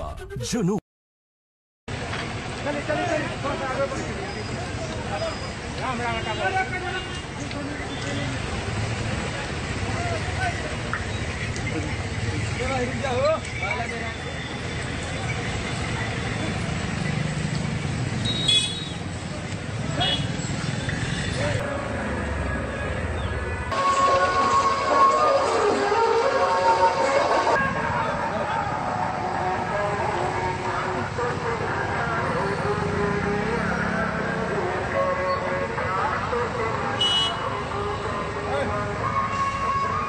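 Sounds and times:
people's voices: 0.0 - 0.8
outdoor background din: 1.9 - 40.0
road traffic: 1.9 - 40.0
car horn toot: 18.2 - 18.9, 37.0 - 37.4.

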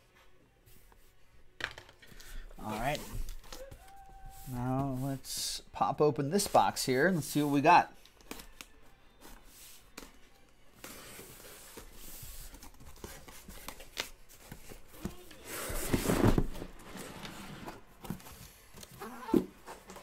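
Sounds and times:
cardboard rustling: 10.8 - 20.0.

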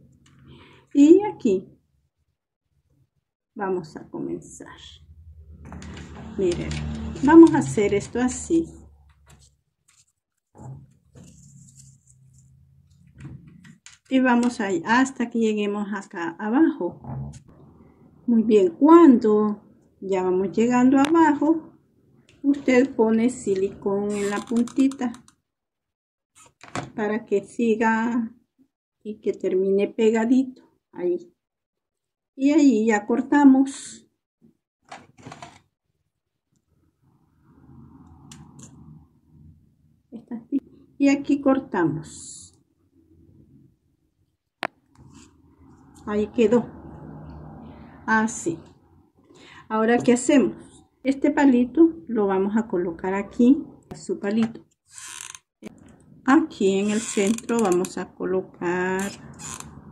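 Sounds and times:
faint low rumble: 4.2 - 9.2.

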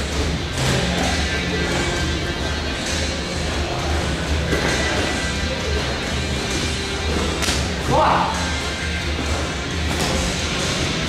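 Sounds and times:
boxing gloves smacking: 7.4 - 7.7.

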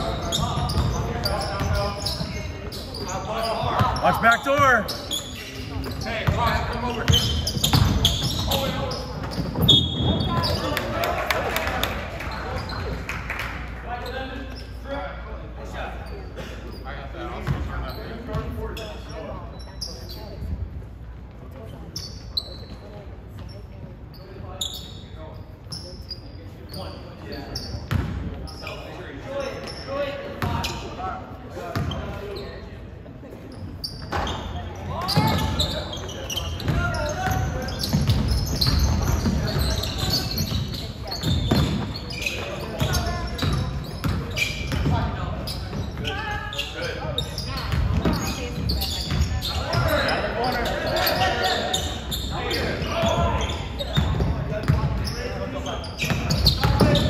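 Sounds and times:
sneakers squeaking: 0.0 - 13.2, 13.9 - 57.0
players' voices: 0.0 - 57.0.

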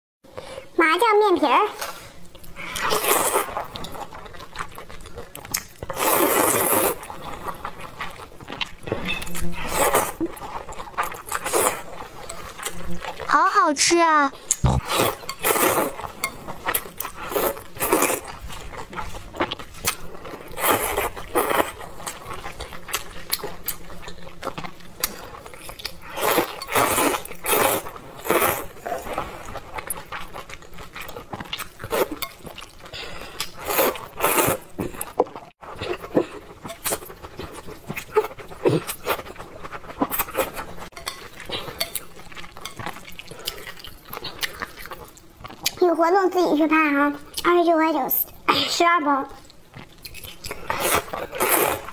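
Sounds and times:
noodles slurping: 1.7 - 45.8, 50.3 - 51.9
chewing: 1.8 - 13.3, 14.3 - 45.8, 49.3 - 51.9.

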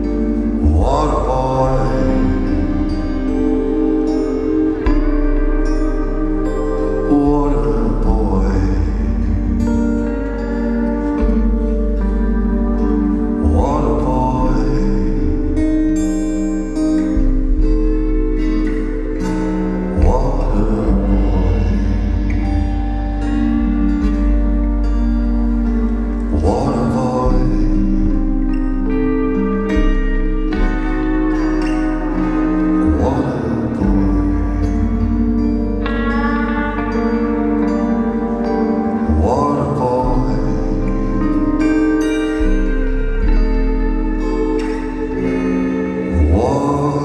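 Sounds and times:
deep sustained bass: 0.0 - 47.0
live band with electric guitars: 0.0 - 47.0
loud chord ringing: 0.0 - 47.0
low drone: 0.0 - 47.0.

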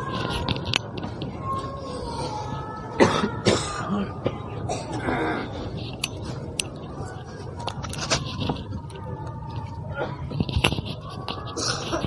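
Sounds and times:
person coughing: 3.0 - 4.1.

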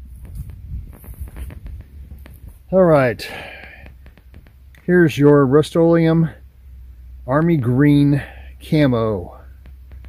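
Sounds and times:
footsteps on grass: 0.0 - 4.6
camera handling thuds and rustling: 0.1 - 2.7.

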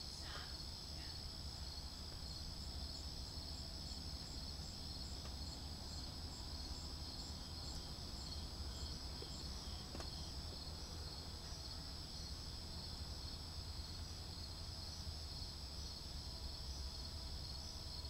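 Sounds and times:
insects trilling: 0.0 - 18.0.

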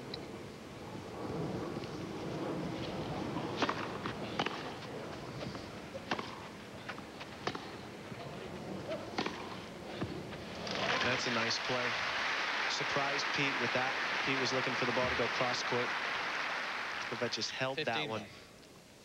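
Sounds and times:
crowd hum: 0.8 - 18.2
racket striking tennis ball: 3.6 - 4.7, 6.0 - 6.5, 7.4 - 7.8, 9.1 - 9.6.

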